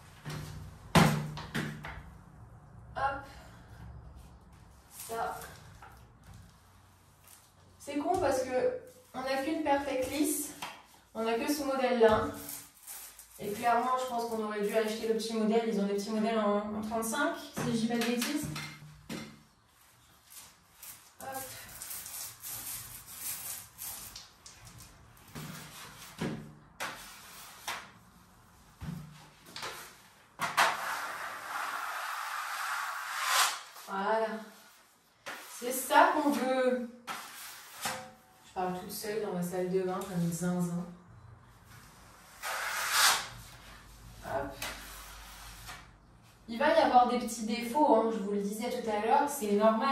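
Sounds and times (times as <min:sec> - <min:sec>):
plastering knife scraping plasterboard: 0:20.3 - 0:28.0, 0:29.5 - 0:33.9, 0:34.6 - 0:38.3, 0:42.3 - 0:43.8.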